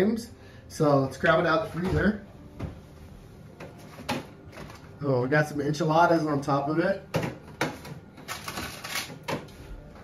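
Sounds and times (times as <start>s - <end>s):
frozen food packages clattering: 7.2s - 9.5s
packages rustling: 8.0s - 9.9s.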